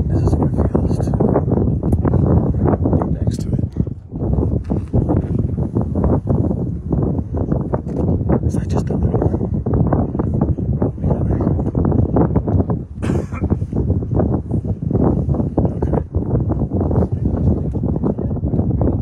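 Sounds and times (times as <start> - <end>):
lava fountain rumbling: 0.0 - 19.0
lava crackles and pops: 1.7 - 8.9.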